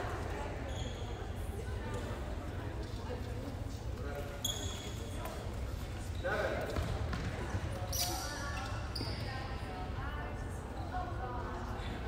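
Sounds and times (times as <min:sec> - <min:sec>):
voices echoing in gymnasium: 0:00.0 - 0:12.0
short high squeaks: 0:00.7 - 0:01.2, 0:04.4 - 0:05.2.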